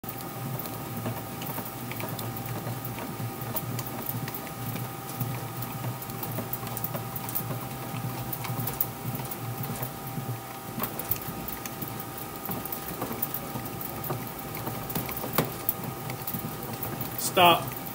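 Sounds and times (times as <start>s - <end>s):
bat rolling machine hum: 0.0s - 17.9s.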